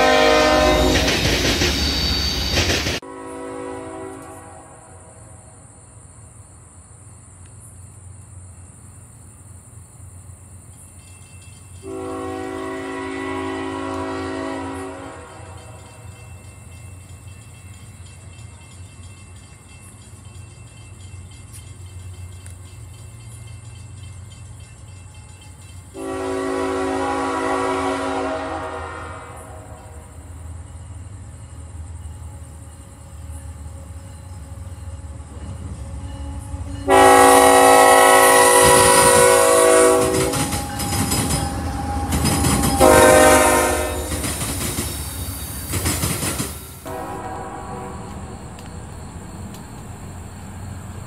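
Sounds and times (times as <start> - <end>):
locomotive horn blasts: 0.0 - 1.1, 3.0 - 5.4, 11.8 - 16.0, 26.0 - 30.0, 36.3 - 44.2, 46.8 - 48.7
low rumble of train: 0.0 - 51.0.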